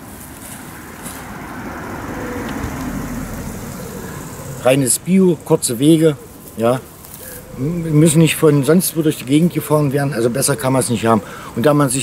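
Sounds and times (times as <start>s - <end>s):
car passing on road: 0.1s - 9.8s.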